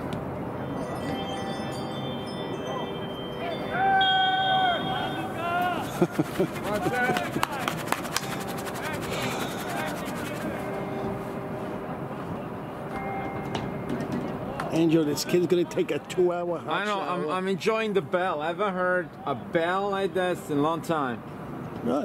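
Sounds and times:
bell ringing rapidly: 0.6 - 10.9
voices calling out: 2.3 - 7.8.

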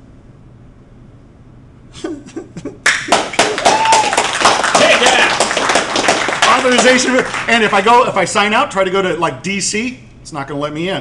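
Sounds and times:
audience clapping: 2.8 - 8.2
audience cheering: 2.9 - 8.0.

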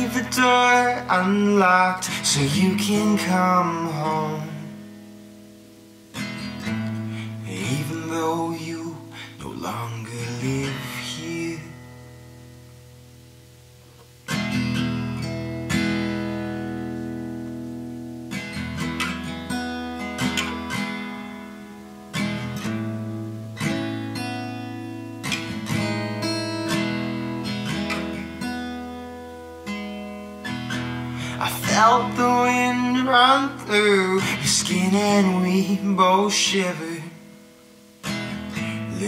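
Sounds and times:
acoustic guitar strumming: 0.0 - 39.0.

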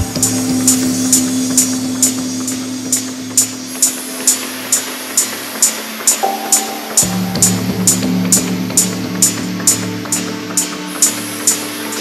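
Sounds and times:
held synth drone: 0.0 - 12.0
sharp hi-hat ticks: 0.0 - 12.0.

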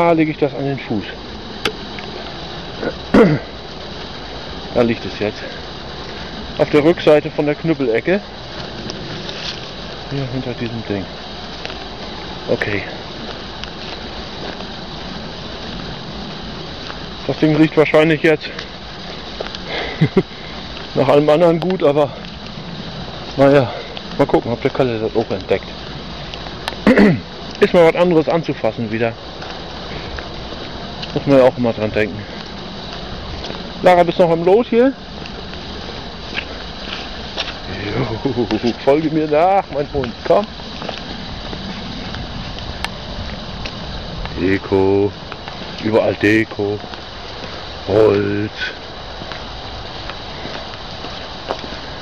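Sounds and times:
footsteps through undergrowth: 0.0 - 52.0
steady hiss: 0.0 - 52.0.

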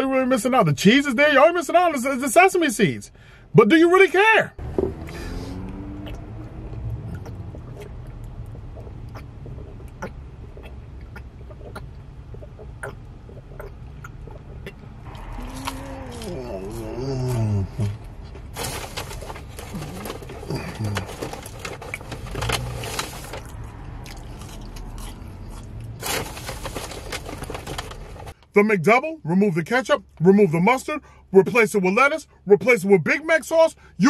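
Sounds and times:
car cabin hum: 4.2 - 28.4
person humming: 15.2 - 18.0, 19.7 - 21.2
rustling and handling: 18.0 - 23.5, 26.0 - 28.4.

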